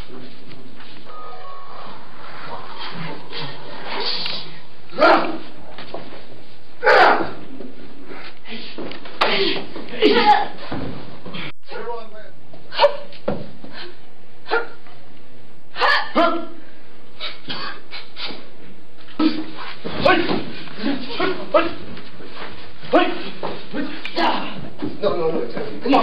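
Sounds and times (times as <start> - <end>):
martial artists shouting: 1.1 - 5.6, 6.8 - 7.5, 8.6 - 10.6, 15.7 - 16.6, 19.2 - 21.9, 22.8 - 24.7
martial arts hits and kicks: 19.2 - 25.0.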